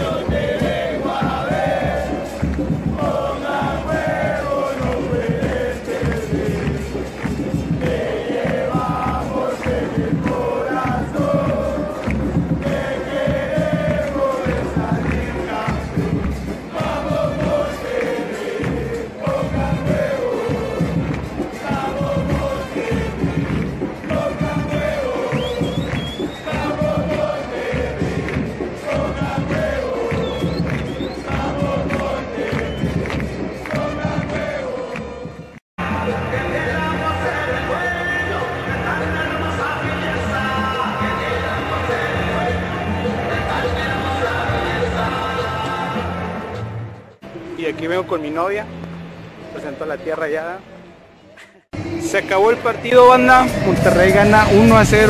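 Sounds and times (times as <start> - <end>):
bass drums beating: 0.0 - 36.9, 52.9 - 55.0
crowd chanting in unison: 0.0 - 47.5, 51.6 - 55.0.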